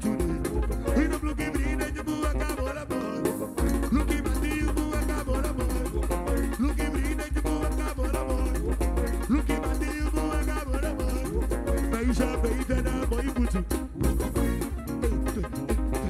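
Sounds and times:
pulsing bass beat: 0.0 - 2.9, 3.6 - 16.0
upbeat band music: 0.0 - 16.0.

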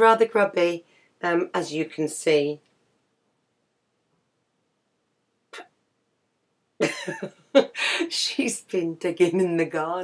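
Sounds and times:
woman laughing: 6.8 - 8.1.

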